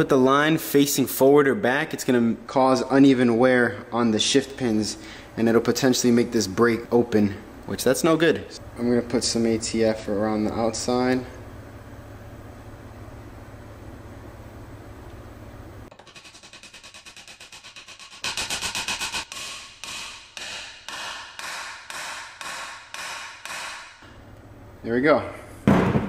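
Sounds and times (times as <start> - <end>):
hammer striking metal: 18.7 - 24.0.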